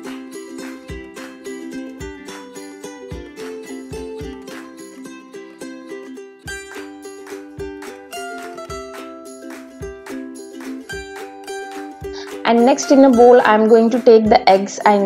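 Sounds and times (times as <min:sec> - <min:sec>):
light instrumental music with beat: 0:00.0 - 0:15.0.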